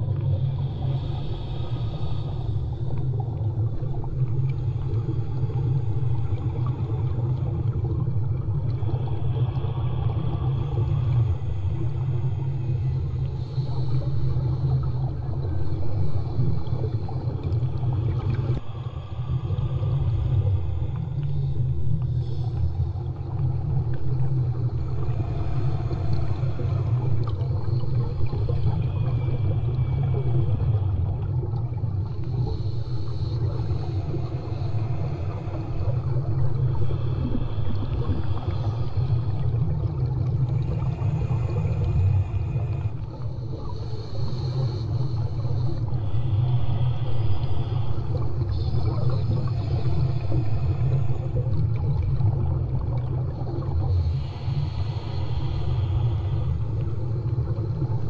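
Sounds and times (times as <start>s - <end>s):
faint hissing: 0.0s - 58.0s
muffled underwater rumble: 0.0s - 58.0s.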